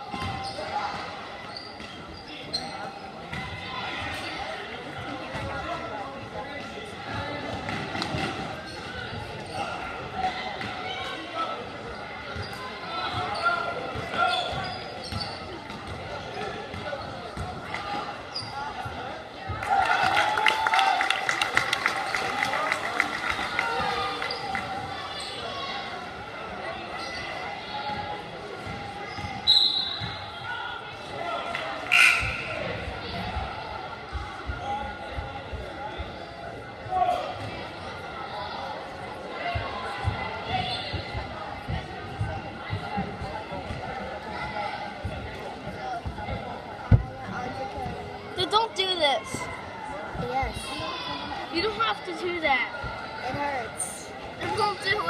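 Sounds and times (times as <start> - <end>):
crowd chatter in large hall: 0.0 - 55.0
referee's whistle: 29.4 - 30.3, 31.9 - 32.6.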